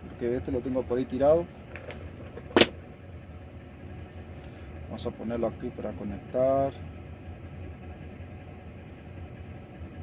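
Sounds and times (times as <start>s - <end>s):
truck cab low hum: 0.0s - 10.0s.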